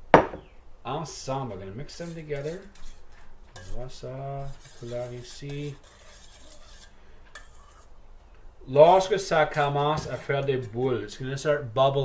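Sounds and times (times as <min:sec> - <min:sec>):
metal utensil scraping steel bowl: 0:01.8 - 0:07.9, 0:09.6 - 0:10.7.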